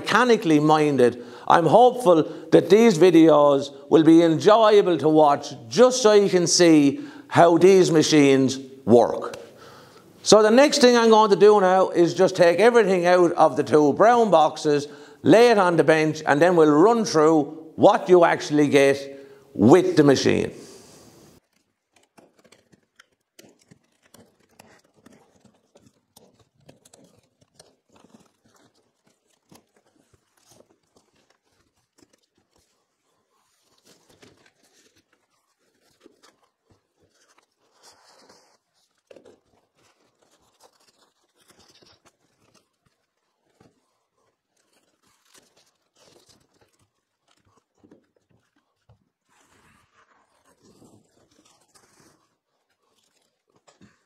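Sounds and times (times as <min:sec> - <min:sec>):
cardboard rustling and tearing: 0:21.4 - 0:54.0.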